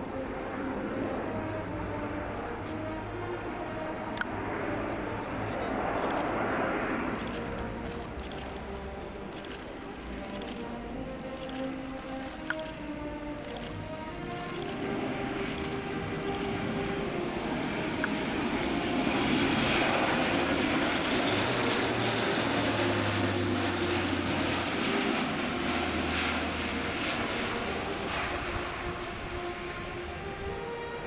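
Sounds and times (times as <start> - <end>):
propeller aircraft droning overhead: 0.0 - 31.0.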